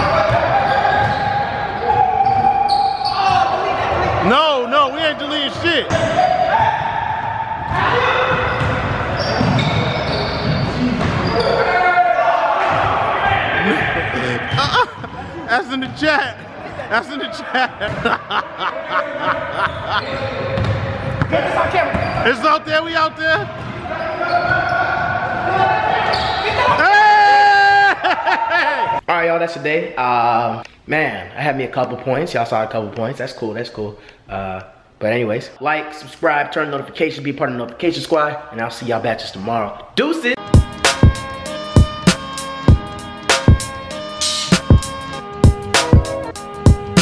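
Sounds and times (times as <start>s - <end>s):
men calling out: 13.2s - 20.4s
basketball bouncing on hardwood: 23.5s - 23.8s.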